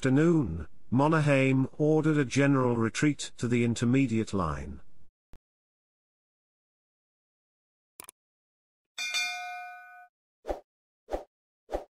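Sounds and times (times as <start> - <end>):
bright notification bell ding: 9.0 - 10.1.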